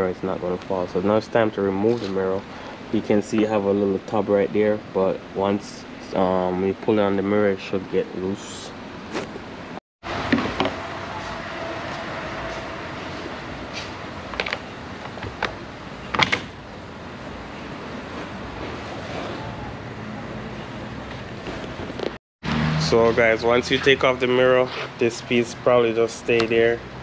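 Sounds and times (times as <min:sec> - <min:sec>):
sharp clicks and knocks: 0:14.3 - 0:16.6.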